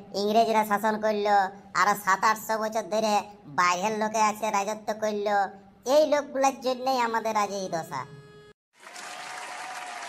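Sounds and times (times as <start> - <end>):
crowd applause: 8.8 - 10.0.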